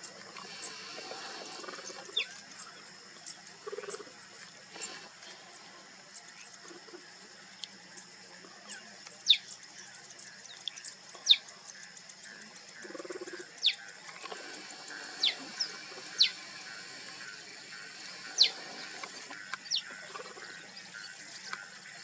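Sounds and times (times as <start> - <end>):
steady high hiss: 0.0 - 22.0
cheetah cubs chirping: 0.4 - 7.0, 8.6 - 22.0.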